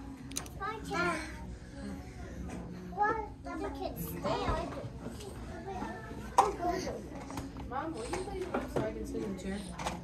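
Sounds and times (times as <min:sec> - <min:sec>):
children chattering and playing: 0:00.0 - 0:10.0.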